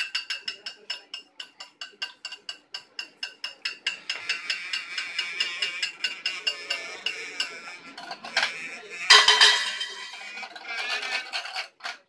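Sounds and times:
metal percussion clinking: 9.1 - 10.6.

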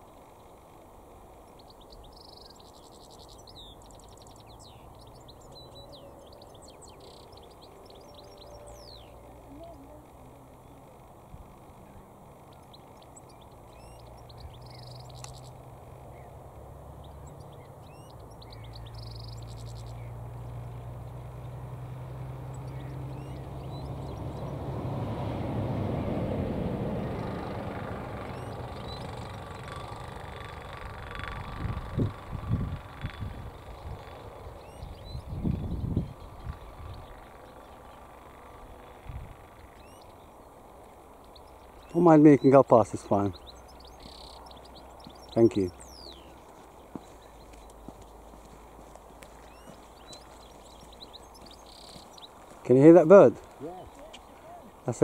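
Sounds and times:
low outdoor rumble: 0.0 - 55.0
goldfinch calls: 1.4 - 16.4, 17.0 - 20.6, 22.3 - 24.6, 28.2 - 55.0.

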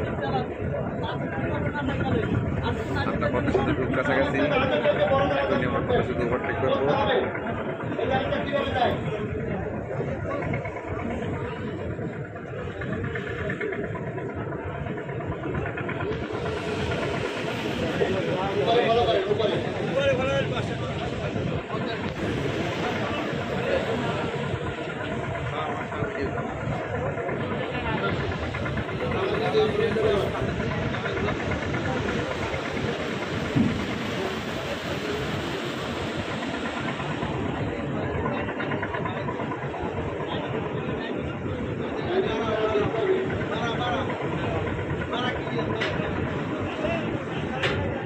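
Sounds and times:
boat engine drone: 0.0 - 48.0
faint chatter of people: 0.0 - 48.0
water and wind rushing: 0.0 - 48.0
water rushing: 15.7 - 38.0.

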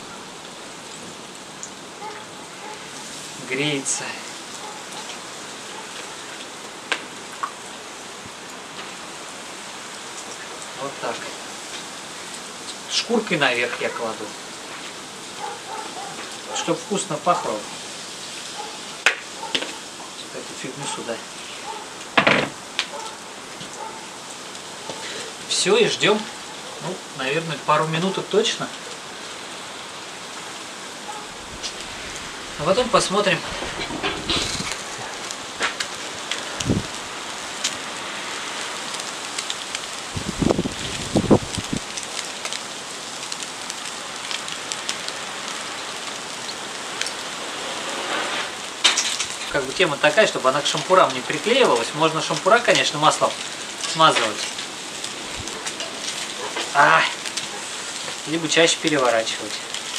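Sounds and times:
charcoal grill crackling: 0.0 - 59.9.

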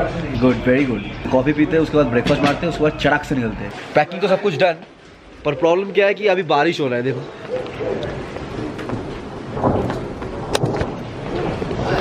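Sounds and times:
rain and stormy wind: 7.6 - 12.0.

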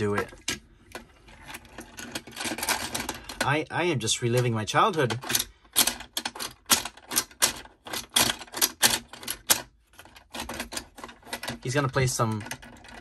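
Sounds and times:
plastic toys clicking and clattering: 0.0 - 13.0.

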